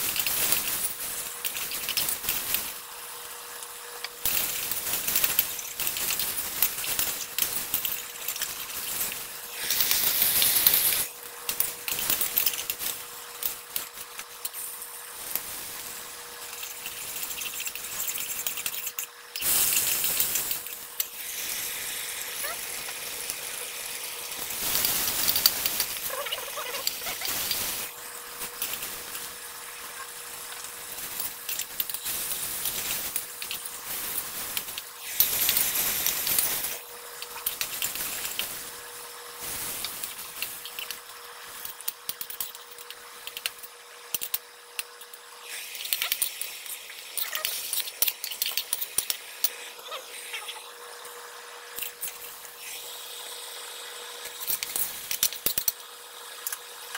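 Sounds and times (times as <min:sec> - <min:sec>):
food sizzling in a wok: 0:00.0 - 0:56.9.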